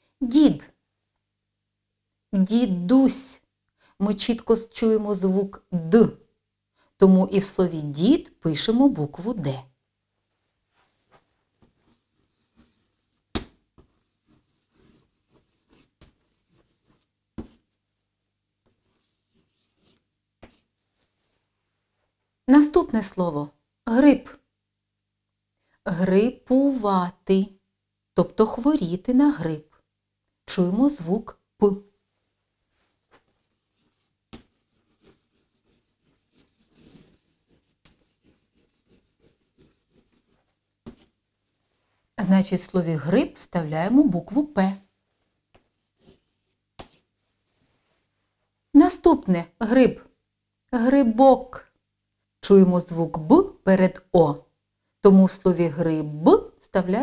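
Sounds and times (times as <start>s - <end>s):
chalk writing on blackboard: 11.6s - 17.6s, 18.7s - 20.7s, 33.6s - 41.1s, 45.6s - 47.1s.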